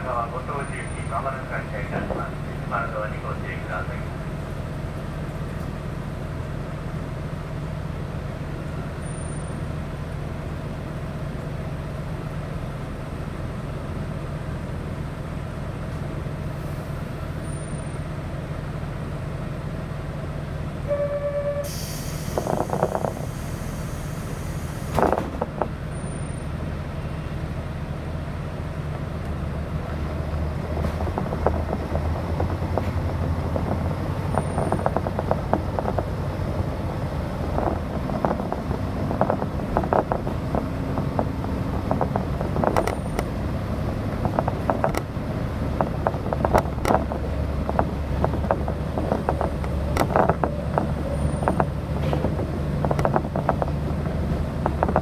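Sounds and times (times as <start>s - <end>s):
diesel train engine idling: 0.0s - 55.0s
short tone: 20.8s - 22.1s
air hissing: 21.6s - 25.0s.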